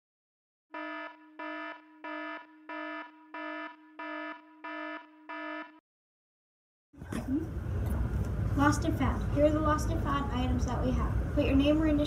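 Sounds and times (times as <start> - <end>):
electronic alarm beeping: 0.8 - 5.8.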